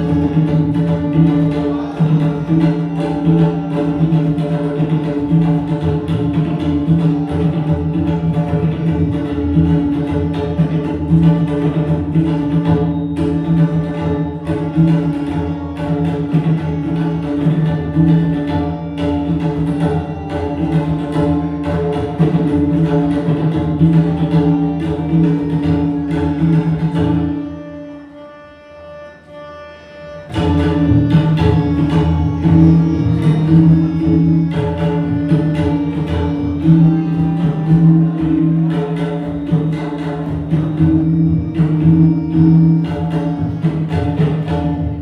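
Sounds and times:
harmonium holding notes: 0.0 - 45.0
tabla ensemble playing fast: 0.0 - 45.0.

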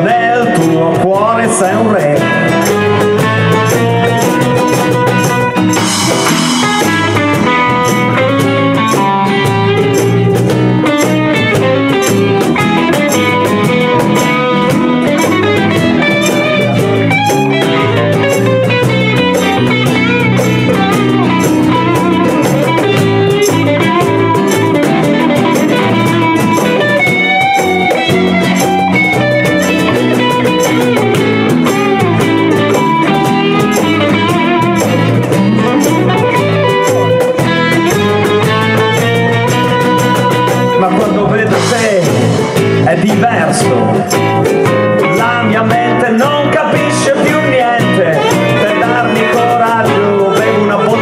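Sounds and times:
live band playing: 0.0 - 51.0.

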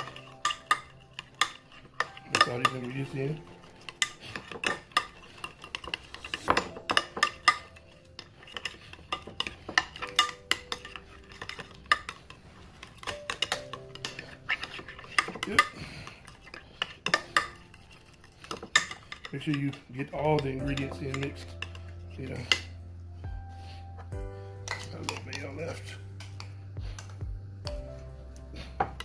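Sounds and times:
spoon clinking on glass: 0.0 - 12.2
spoon stirring thick mixture: 0.0 - 27.2.

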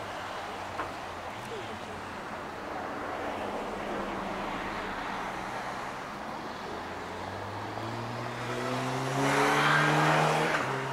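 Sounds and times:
outdoor noise: 0.0 - 10.9
vehicle engine accelerating: 7.3 - 10.9.

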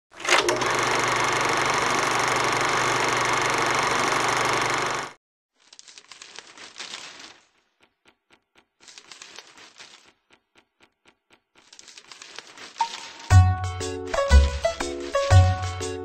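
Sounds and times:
crackling clicks: 5.6 - 13.4.

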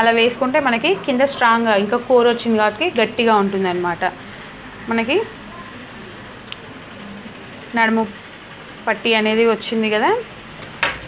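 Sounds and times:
woman speaking: 0.0 - 4.2, 4.8 - 6.0, 7.7 - 8.2, 8.8 - 10.3.

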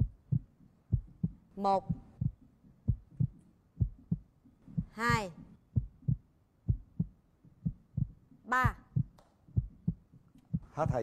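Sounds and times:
heartbeat double thumps: 0.0 - 11.0.

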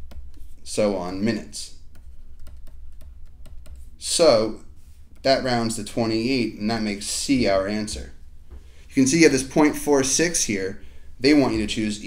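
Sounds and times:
steady low hum: 0.0 - 12.0
stylus tapping on tablet: 1.9 - 3.8.

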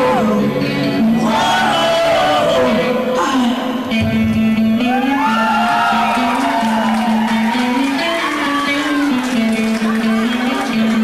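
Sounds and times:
wordless wailing vocals: 0.0 - 3.8.

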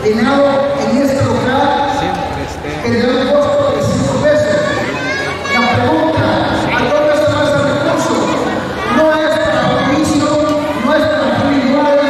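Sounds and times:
people talking: 0.0 - 12.0
children's voices: 0.3 - 12.0.

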